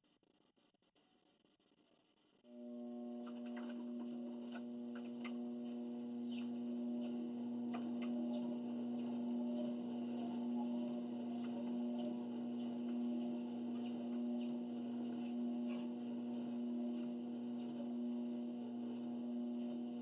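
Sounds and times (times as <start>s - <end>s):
treadmill motor humming: 2.5s - 20.0s.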